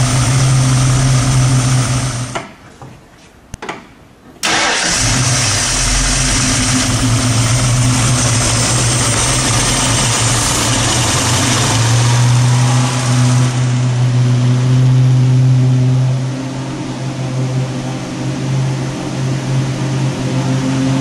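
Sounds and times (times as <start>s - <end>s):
vee eight engine running: 4.5s - 21.0s.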